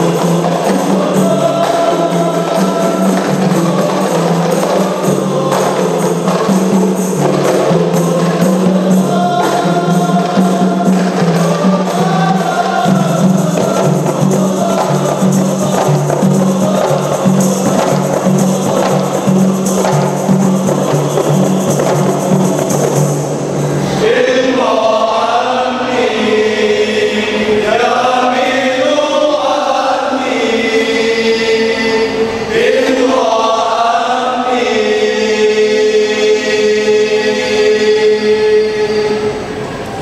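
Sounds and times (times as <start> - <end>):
frame drums beating: 0.0 - 24.1
men singing: 0.0 - 39.5.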